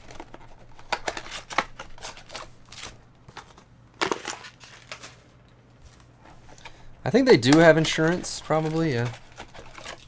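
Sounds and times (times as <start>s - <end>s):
card packaging rustle: 0.0s - 5.3s, 5.9s - 10.0s
packaging crunch: 0.0s - 5.3s, 6.5s - 10.0s.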